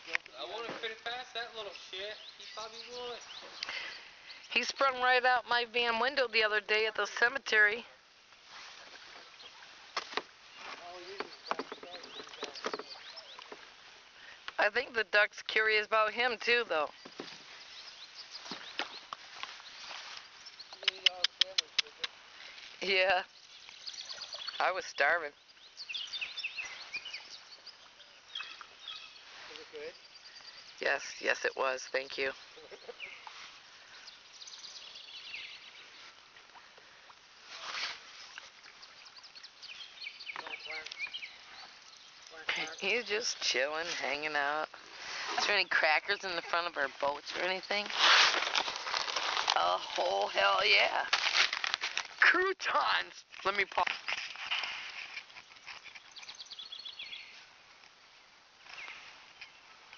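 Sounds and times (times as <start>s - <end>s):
small birds chirping: 0.0s - 7.9s, 8.7s - 59.9s
faint outdoor ambience: 0.0s - 59.9s
small bird chirping: 16.9s - 22.6s, 23.2s - 33.3s, 38.1s - 44.8s, 53.5s - 57.5s.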